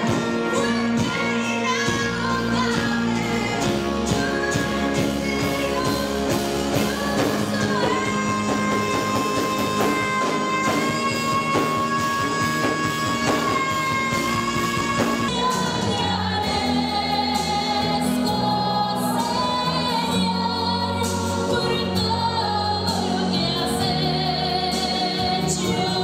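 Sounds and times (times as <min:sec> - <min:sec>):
musical backing track: 0:00.0 - 0:26.0
woman singing: 0:00.0 - 0:26.0.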